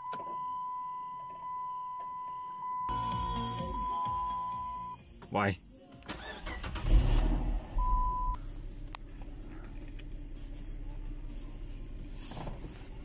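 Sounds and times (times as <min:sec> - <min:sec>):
short electronic beep: 0:00.0 - 0:05.0, 0:07.8 - 0:08.4
car engine starting and idling: 0:06.0 - 0:13.0.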